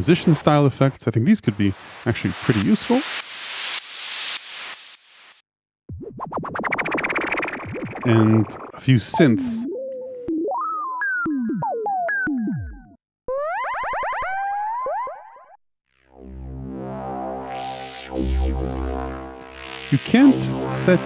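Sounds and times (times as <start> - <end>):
synth percussive pitched notes: 5.9 - 13.6
synth notes gliding upward: 8.0 - 9.7, 16.4 - 21.0
low synth drone: 16.2 - 21.0.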